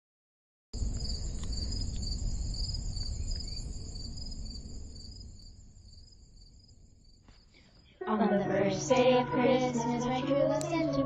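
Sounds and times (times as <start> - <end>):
crickets chirping: 0.8 - 11.0.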